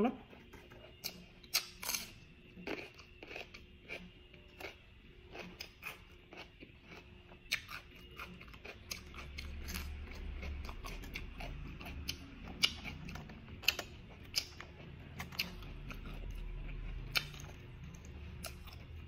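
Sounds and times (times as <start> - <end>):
close-up chewing: 0.2 - 19.0.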